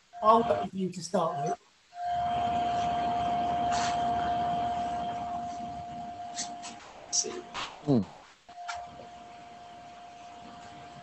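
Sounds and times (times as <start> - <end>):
steady tone: 0.0 - 11.0.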